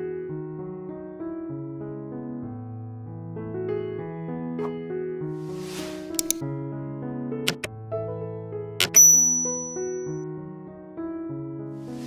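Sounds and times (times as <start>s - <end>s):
electric piano melody: 7.5s - 11.6s
high ringing tone: 8.8s - 10.2s.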